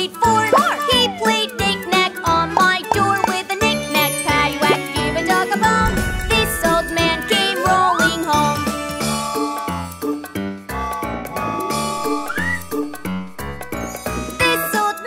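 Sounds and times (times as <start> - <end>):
children's song singing: 0.0 - 8.7, 14.3 - 15.0
tinkly instrumental music: 3.6 - 15.0.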